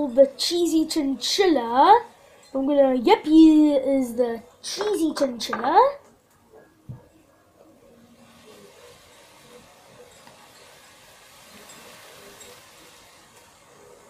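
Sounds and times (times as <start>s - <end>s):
low steady hiss: 0.0s - 14.0s.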